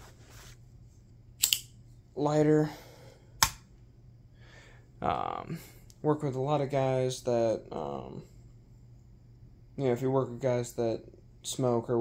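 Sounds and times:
lighter click: 0:01.4 - 0:01.7.

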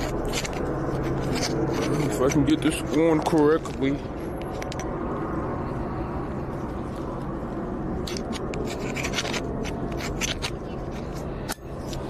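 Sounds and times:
scratching on camera microphone: 0:00.0 - 0:04.9, 0:07.9 - 0:12.0
low street rumble: 0:00.0 - 0:12.0.

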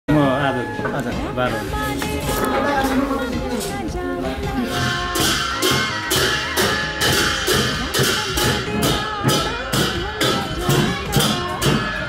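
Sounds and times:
drum beating: 0:00.7 - 0:12.0
brass hand cymbals clashing: 0:04.6 - 0:12.0.

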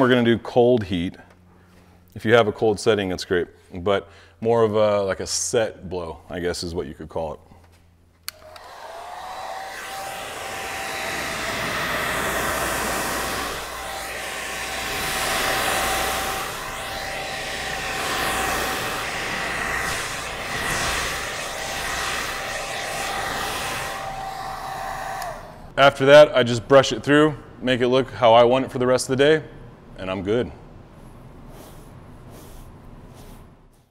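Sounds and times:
hair dryer running: 0:08.3 - 0:25.8.

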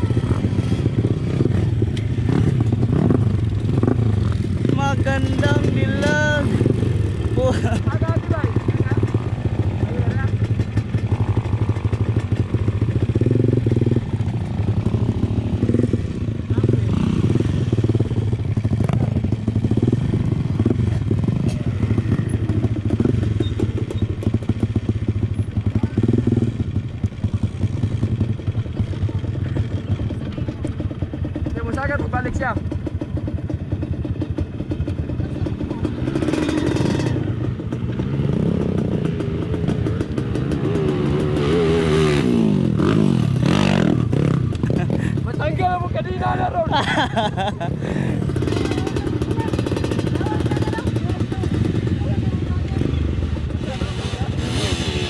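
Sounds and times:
dirt bike engines idling: 0:00.0 - 0:55.0
people talking: 0:04.7 - 0:06.5, 0:07.4 - 0:09.2, 0:09.8 - 0:10.4, 0:45.1 - 0:47.7, 0:48.6 - 0:55.0.

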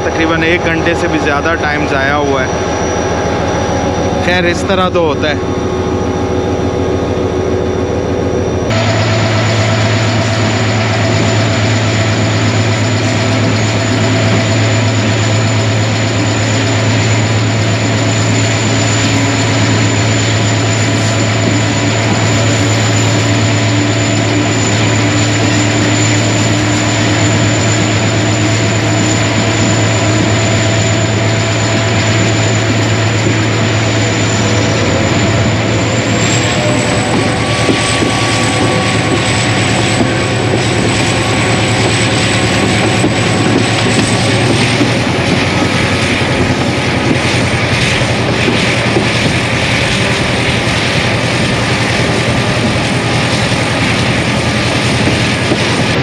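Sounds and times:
locomotive engine drone: 0:00.0 - 0:56.0
train rumbling over rails: 0:00.0 - 0:56.0.

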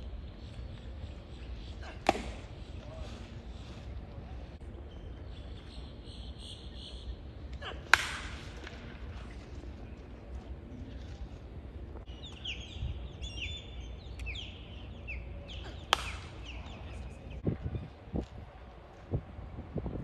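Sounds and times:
baseball smacking into leather mitt: 0:01.9 - 0:02.6, 0:07.9 - 0:08.8, 0:15.9 - 0:16.6.

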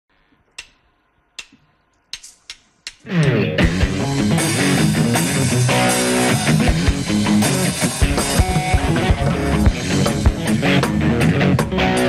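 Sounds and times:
sharp count-in clicks: 0:00.6 - 0:00.8, 0:01.4 - 0:03.4.

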